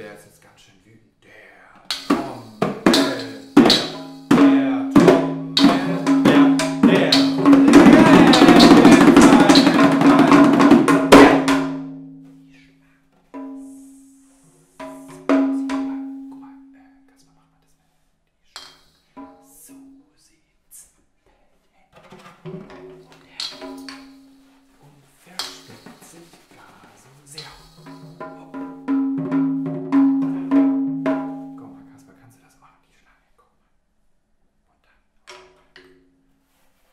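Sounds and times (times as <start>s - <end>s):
toy drum kit hit with sticks: 1.9s - 12.2s, 13.4s - 13.8s, 14.8s - 16.2s, 18.6s - 19.6s, 22.5s - 24.3s, 25.4s - 26.3s, 27.4s - 31.6s
frame drums struck by hand: 1.9s - 12.4s, 13.4s - 14.2s, 14.8s - 16.4s, 18.6s - 19.5s, 22.4s - 24.5s, 25.3s - 31.8s.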